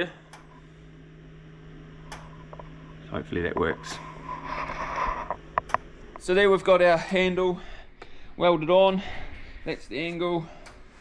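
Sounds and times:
welder humming: 0.0s - 11.0s.

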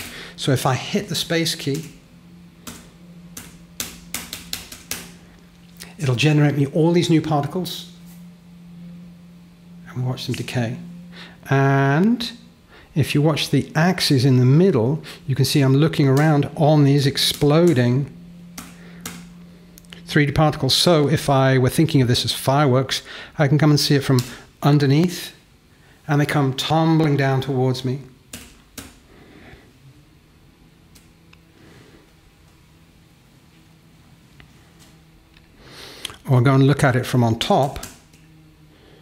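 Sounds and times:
low hum: 0.0s - 39.0s
laptop keys clicking: 3.4s - 5.1s.

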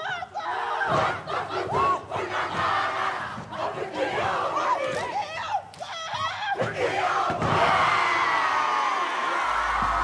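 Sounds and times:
group shouting and chanting: 0.0s - 10.0s.

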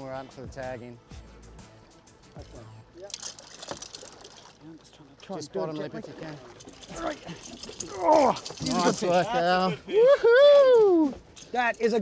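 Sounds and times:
water splashing and sloshing: 3.0s - 9.8s.

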